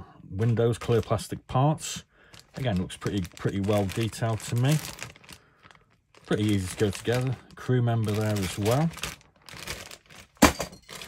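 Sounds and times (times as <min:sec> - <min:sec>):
plastic bag crinkling: 0:02.2 - 0:11.0.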